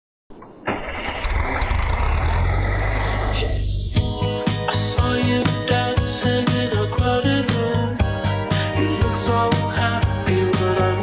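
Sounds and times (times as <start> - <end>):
car engine starting and running: 0.3 - 4.2.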